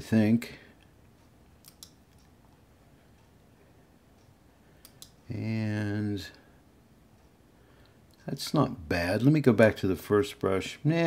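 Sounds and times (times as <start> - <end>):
computer mouse clicks: 1.6 - 2.3, 4.2 - 5.2.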